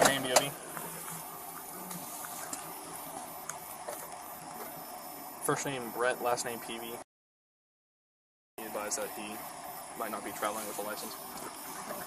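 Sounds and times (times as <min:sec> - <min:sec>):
steady background hiss: 0:00.0 - 0:07.0, 0:08.6 - 0:12.0.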